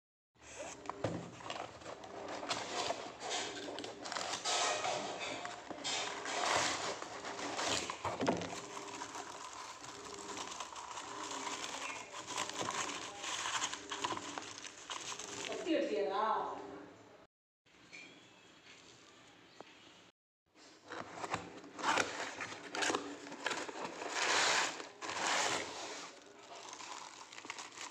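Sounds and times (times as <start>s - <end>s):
packing paper rustling: 0.4s - 15.7s, 20.8s - 27.9s
cardboard box being opened: 0.5s - 5.0s, 6.0s - 15.6s, 20.8s - 27.9s.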